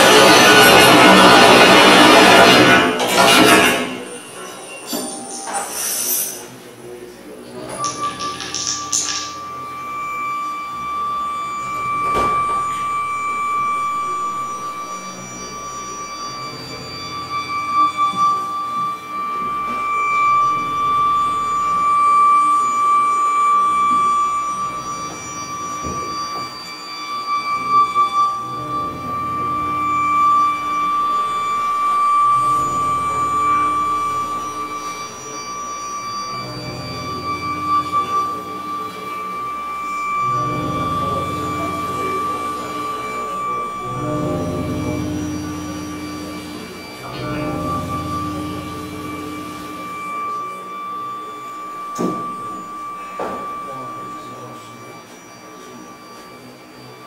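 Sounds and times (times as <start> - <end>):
processed double bass: 0.0 - 4.3, 6.8 - 55.1
high electronic drone: 0.0 - 57.0.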